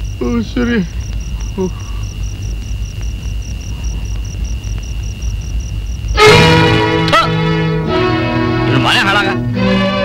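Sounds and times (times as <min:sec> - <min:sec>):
low background rumble: 0:00.0 - 0:08.2
faint high whine: 0:00.0 - 0:10.0.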